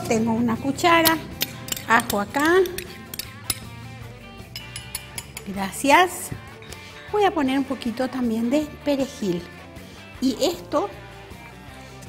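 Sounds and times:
soft background music: 0.0s - 12.0s
metal spoon clinking on stone mortar: 0.9s - 5.9s.

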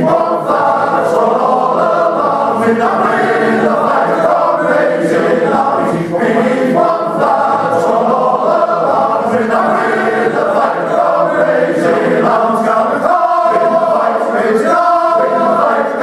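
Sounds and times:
male choir singing in harmony: 0.0s - 16.0s.

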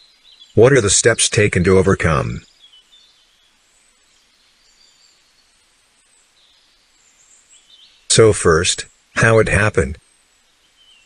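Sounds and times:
faint high chirping: 0.0s - 0.8s
low steady hiss: 0.0s - 11.0s.

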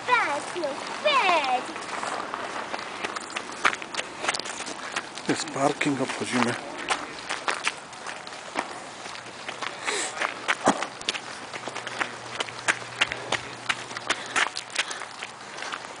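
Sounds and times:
footsteps on gravel: 0.0s - 16.0s.

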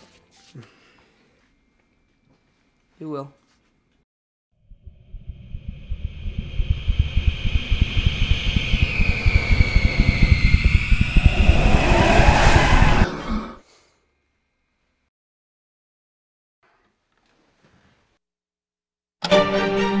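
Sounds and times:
low pulsing rumble: 4.7s - 13.2s
high whining tones: 4.7s - 13.4s.

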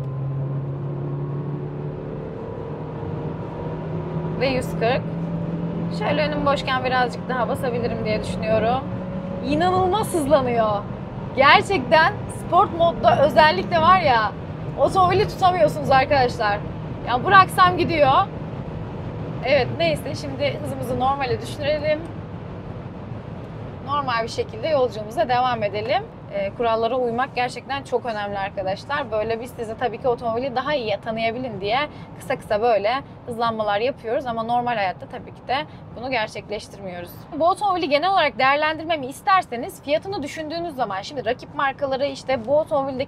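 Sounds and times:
car engine drone accelerating: 0.0s - 29.3s.

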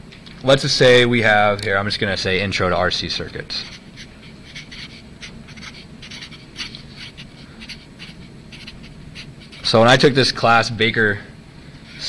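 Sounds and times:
marker writing on paper: 3.6s - 9.8s.

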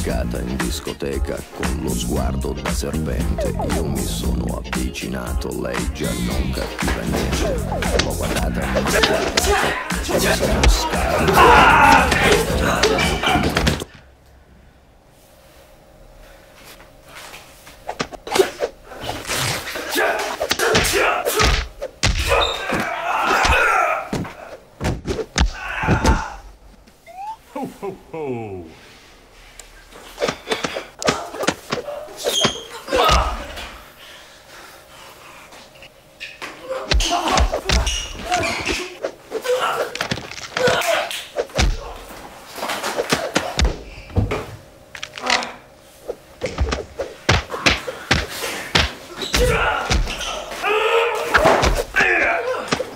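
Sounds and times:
punches and body blows: 6.8s - 14.0s, 17.9s - 26.6s, 30.2s - 33.7s, 36.7s - 42.1s, 42.9s - 44.4s, 46.4s - 52.9s.

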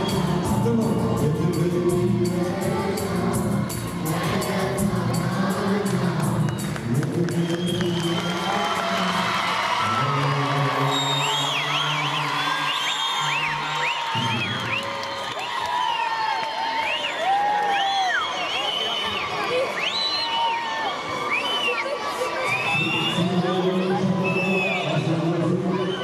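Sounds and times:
backing music: 0.0s - 9.2s
children's choir singing: 0.0s - 9.2s
audience cheering: 6.2s - 24.6s
clapping in time: 6.5s - 9.2s.

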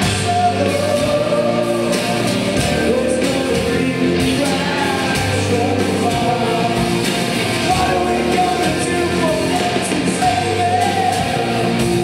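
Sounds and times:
drums: 0.0s - 12.0s
live rock band playing: 0.0s - 12.0s
people singing long notes: 0.0s - 12.0s.

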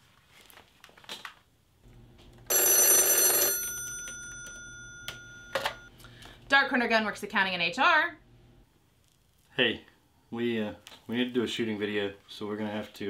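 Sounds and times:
telephone bell ringing: 2.5s - 5.9s.

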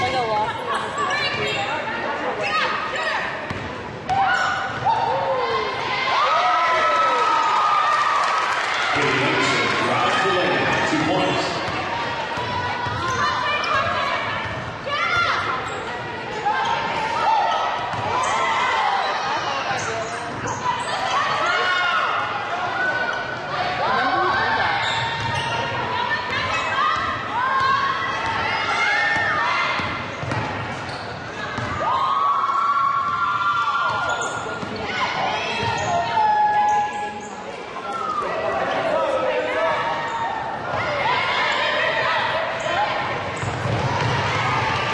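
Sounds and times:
sneakers squeaking: 0.0s - 1.9s, 3.4s - 5.0s, 9.0s - 21.6s, 24.0s - 32.0s, 33.0s - 38.4s, 42.4s - 44.9s
shoes squeaking on hardwood court: 24.8s - 25.8s, 29.8s - 31.8s, 33.9s - 35.0s
basketball bouncing: 29.8s - 30.6s, 43.4s - 44.3s.

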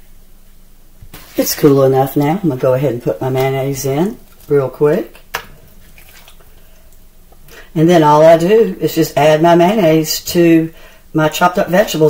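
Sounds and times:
soft squishing: 1.1s - 7.8s.

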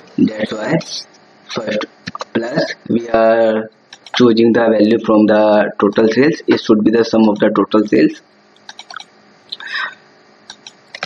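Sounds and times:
computer mouse clicks: 3.9s - 4.2s, 8.6s - 9.1s, 10.5s - 11.0s.

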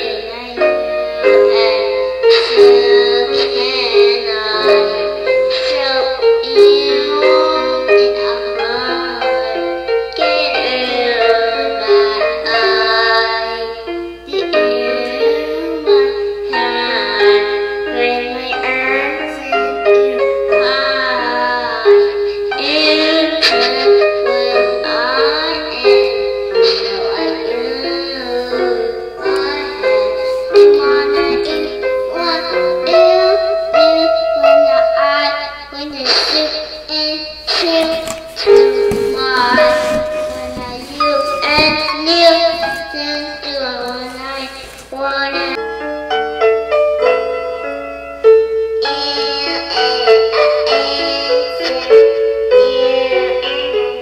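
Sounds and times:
child singing: 0.0s - 46.6s, 48.8s - 54.0s.

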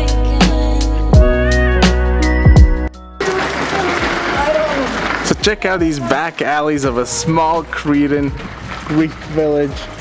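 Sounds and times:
music track: 0.0s - 10.0s
outdoor hiss: 3.2s - 5.8s.

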